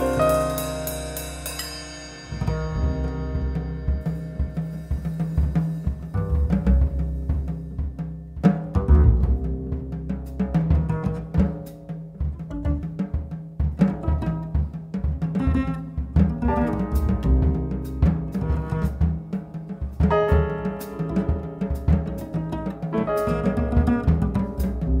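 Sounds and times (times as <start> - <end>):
piano chord: 0.0 - 6.3, 20.0 - 25.0
double bass: 0.0 - 25.0
drums on toms and bass drum: 0.0 - 25.0.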